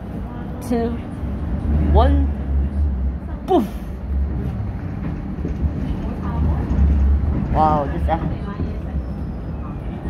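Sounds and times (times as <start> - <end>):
train rumbling on tracks: 0.0 - 10.0.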